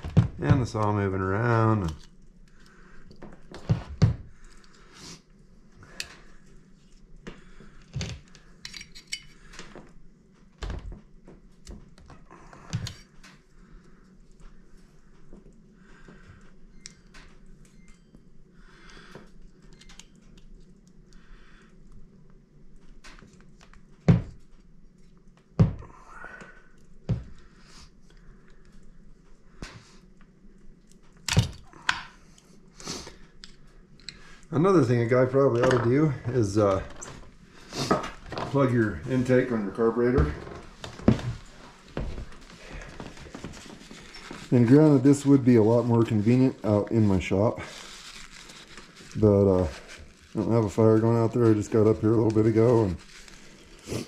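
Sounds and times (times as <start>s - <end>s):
hand tools clicking and scraping: 8.6s - 9.7s.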